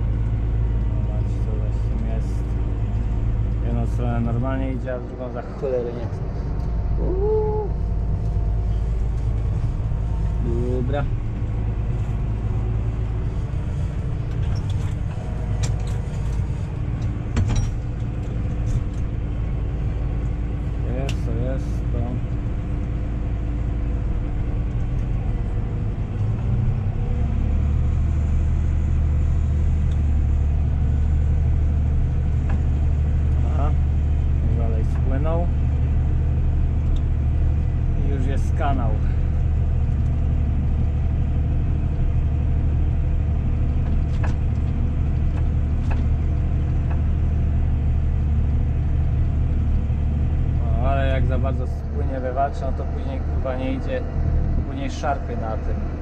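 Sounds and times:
tractor engine droning: 0.0 - 56.0.

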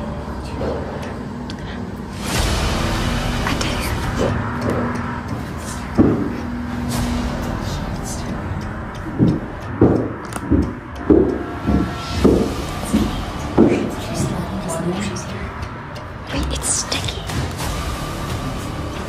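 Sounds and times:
steady low hum: 0.0 - 19.0
footsteps on carpeted stairs: 4.2 - 8.3, 9.0 - 14.7.

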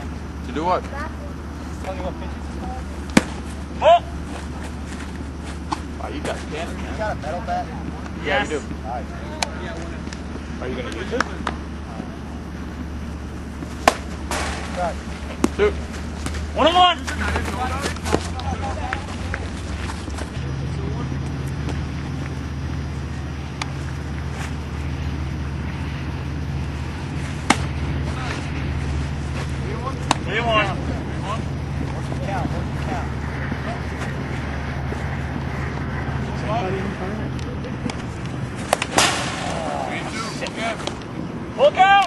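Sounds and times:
steady low rumble: 0.0 - 41.6
distant players calling out: 0.1 - 42.0.

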